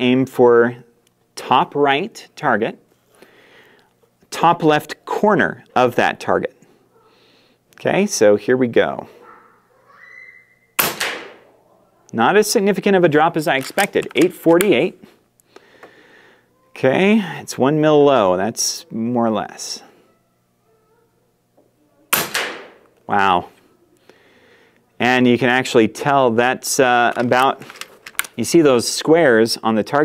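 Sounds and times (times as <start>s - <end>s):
air rifle shot: 10.8s - 11.4s, 22.1s - 22.8s.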